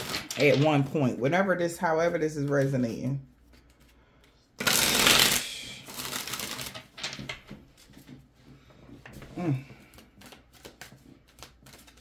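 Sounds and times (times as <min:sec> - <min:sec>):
cards being shuffled: 0:03.4 - 0:08.2, 0:09.7 - 0:12.0.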